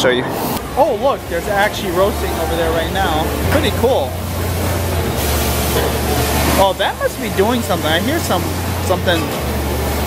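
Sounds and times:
machinery humming: 0:00.1 - 0:10.0
loud hissing rush of air: 0:00.2 - 0:10.0.

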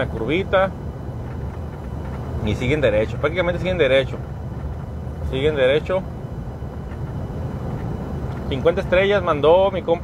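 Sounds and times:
road and engine rumble in cabin: 0:00.0 - 0:10.0.

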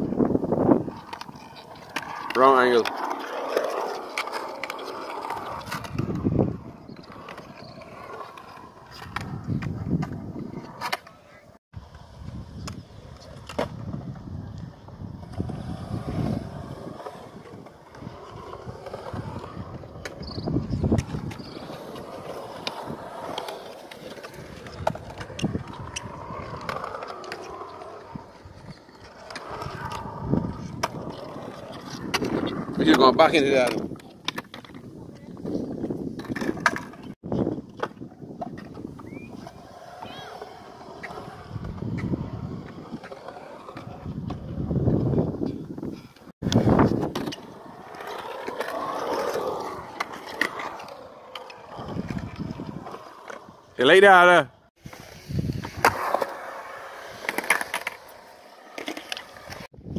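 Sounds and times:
skateboard wheels rolling on concrete: 0:00.0 - 0:59.9
skateboard clicks and clacks: 0:00.7 - 0:53.6.

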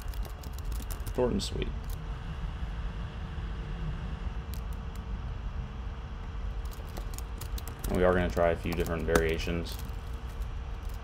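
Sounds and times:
computer keyboard typing: 0:00.0 - 0:01.2, 0:06.6 - 0:11.0
low background hum: 0:00.0 - 0:11.0.

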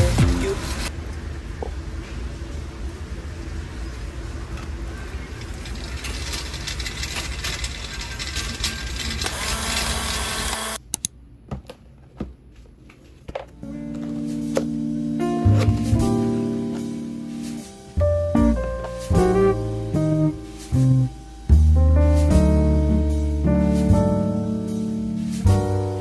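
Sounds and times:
supermarket ambience: 0:00.0 - 0:16.9
background music with held notes: 0:13.5 - 0:26.0.

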